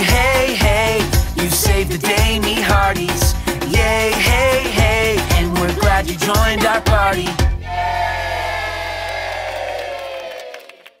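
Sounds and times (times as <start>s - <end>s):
bass tone: 0.1s - 9.1s.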